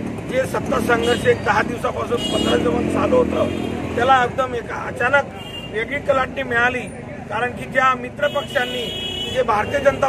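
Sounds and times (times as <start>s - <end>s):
man speaking into a microphone: 0.2s - 10.0s.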